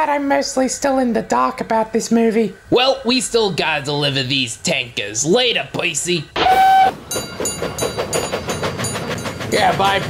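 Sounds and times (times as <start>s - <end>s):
steam locomotive chuffing: 6.4s - 10.0s.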